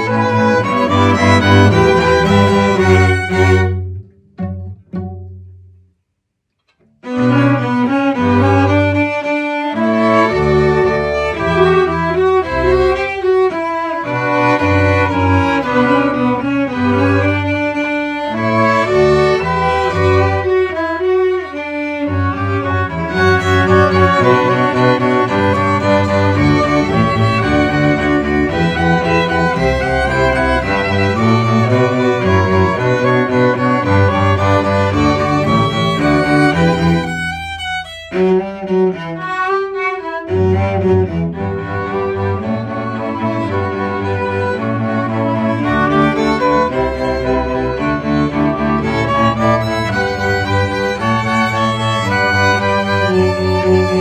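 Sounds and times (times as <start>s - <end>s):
bowed string ensemble: 0.0s - 5.9s, 6.6s - 54.0s.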